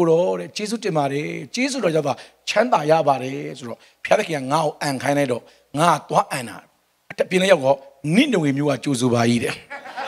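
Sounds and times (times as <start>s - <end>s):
man speaking into a microphone: 0.0s - 9.8s
congregation laughing: 9.7s - 10.0s.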